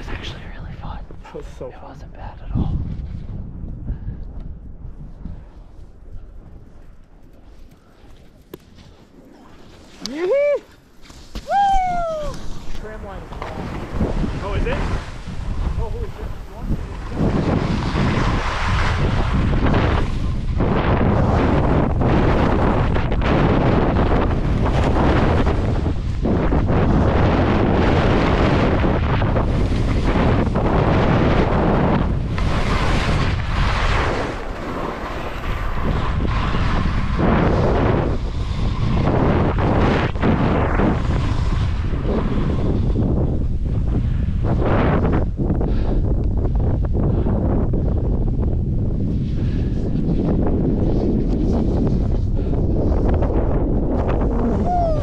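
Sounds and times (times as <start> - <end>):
wind rushing over microphone: 0.0 - 55.0
skis scraping on snow: 6.7 - 11.5, 12.3 - 43.2.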